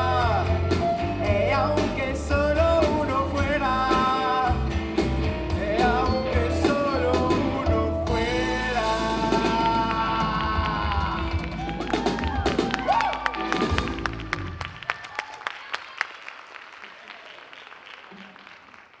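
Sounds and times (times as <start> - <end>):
person singing: 0.0 - 13.2
drums: 0.0 - 14.8
rock band playing: 0.0 - 14.8
audience clapping: 9.4 - 19.0.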